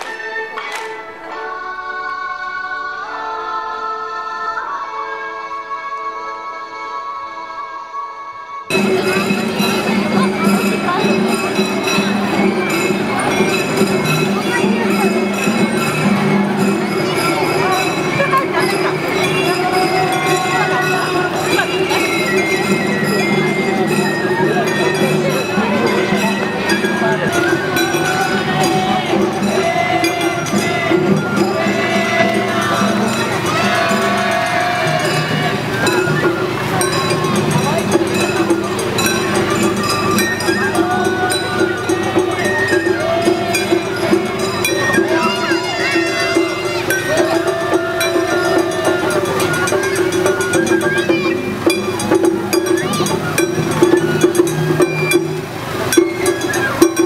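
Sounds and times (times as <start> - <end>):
crowd chattering: 0.0 - 57.0.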